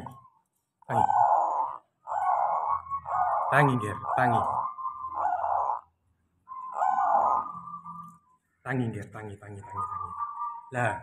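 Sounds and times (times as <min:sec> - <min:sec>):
dove cooing: 0:00.9 - 0:05.9, 0:06.5 - 0:08.2.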